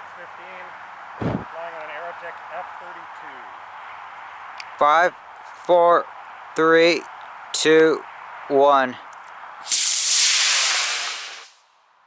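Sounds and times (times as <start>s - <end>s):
rocket motor hissing: 9.6s - 11.6s.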